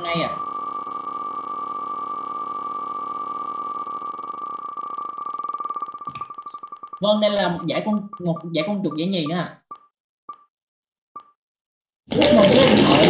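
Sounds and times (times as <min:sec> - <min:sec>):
steady electronic tone: 0:00.0 - 0:09.9
prize wheel rapid ticking: 0:00.0 - 0:10.4.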